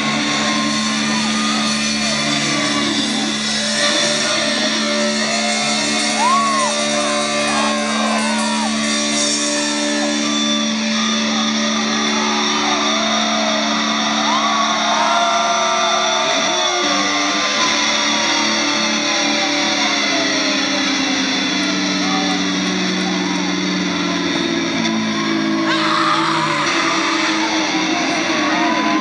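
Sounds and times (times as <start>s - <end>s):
crowd shouting and cheering: 0.0s - 29.0s
guitar feedback: 0.0s - 29.0s.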